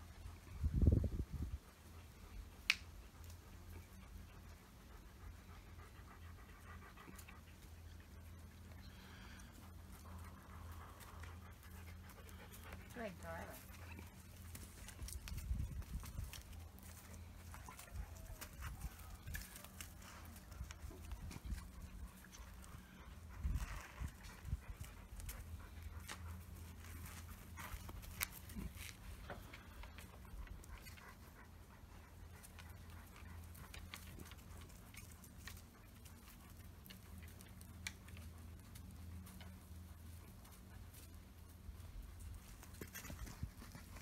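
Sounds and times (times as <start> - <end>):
paws and leash clicks and scuffs: 1.3 - 44.0.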